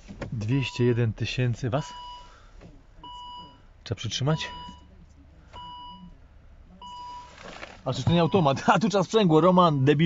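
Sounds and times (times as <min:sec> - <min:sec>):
dashboard warning beep: 0:00.4 - 0:06.2, 0:06.8 - 0:10.0.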